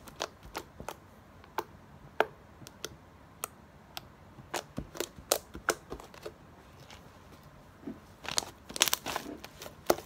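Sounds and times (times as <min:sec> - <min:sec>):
fingertips popping slime: 0:00.0 - 0:06.4.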